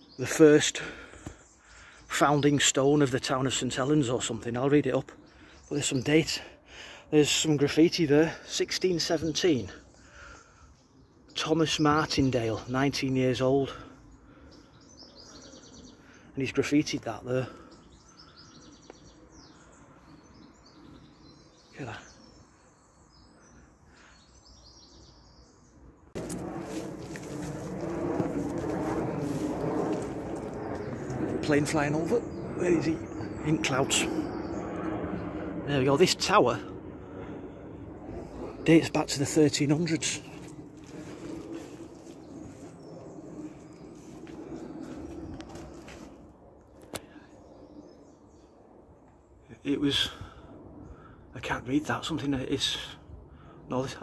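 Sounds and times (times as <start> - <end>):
aircraft flying overhead: 0.0 - 54.0
birds chirping: 0.0 - 54.0.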